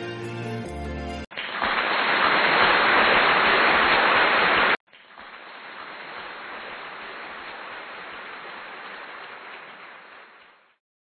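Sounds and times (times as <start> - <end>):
steady noise hiss: 1.8 - 10.7.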